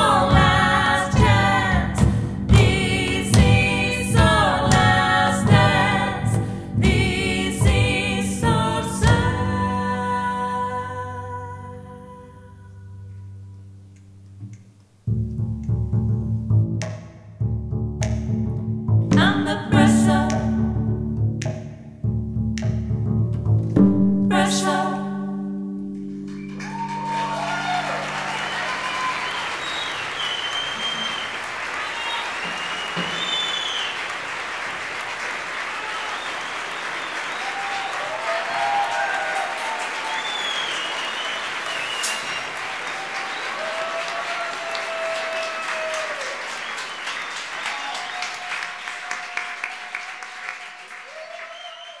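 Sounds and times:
audience applauding: 26.2 - 52.0
audience cheering and whooping: 26.3 - 34.4, 35.2 - 52.0.

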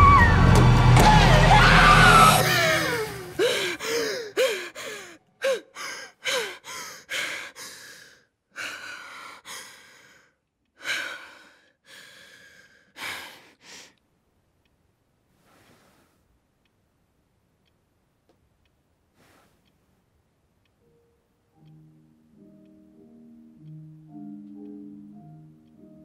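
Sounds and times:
loud scream: 0.0 - 3.5
woman sobbing and gasping: 2.3 - 9.8
music: 20.9 - 26.0.

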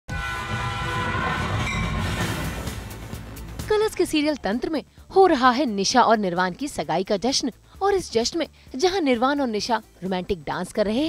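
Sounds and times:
steam locomotive whistle: 0.1 - 3.4.

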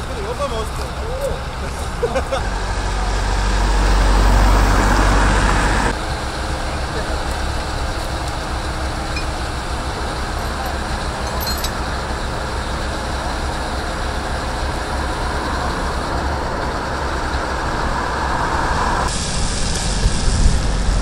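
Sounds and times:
diesel truck engine hum: 0.0 - 21.0
loud rushing swell: 2.4 - 10.4, 14.1 - 21.0.

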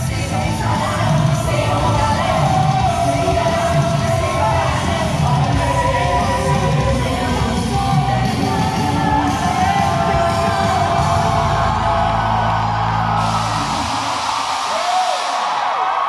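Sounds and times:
steady bass line: 0.0 - 14.2
group of singers on microphones: 0.0 - 15.4
audience cheering and screaming: 0.1 - 16.0.

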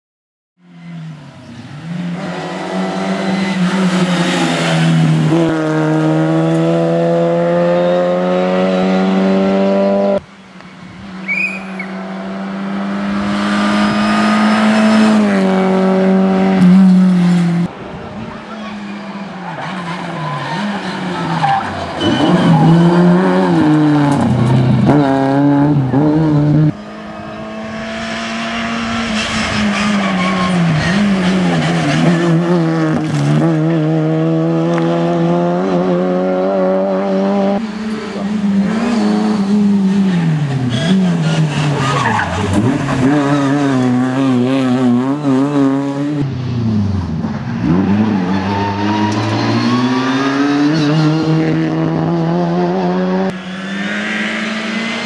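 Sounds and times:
rally car engine at high revs: 1.5 - 10.2, 11.8 - 17.8, 18.9 - 55.0.

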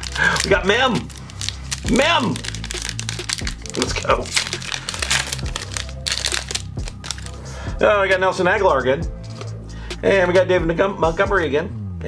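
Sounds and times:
foil wrapper tearing and crinkling: 0.0 - 7.4.

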